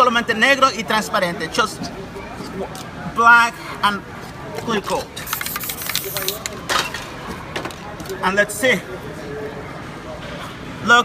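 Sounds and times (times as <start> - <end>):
aerosol spray can hissing: 5.2 - 6.5.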